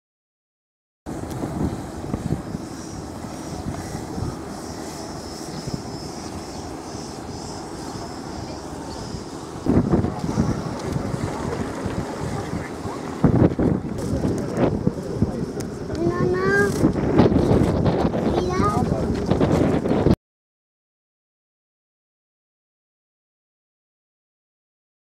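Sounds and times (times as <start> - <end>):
wind buffeting microphone: 1.1 - 20.2
people's voices: 7.5 - 19.5.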